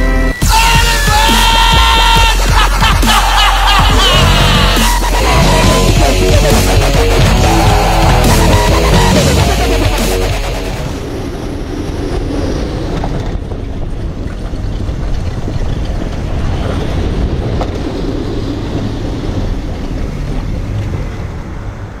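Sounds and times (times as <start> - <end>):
roller coaster rumbling on track: 0.3 - 22.0
wind buffeting microphone: 10.7 - 22.0.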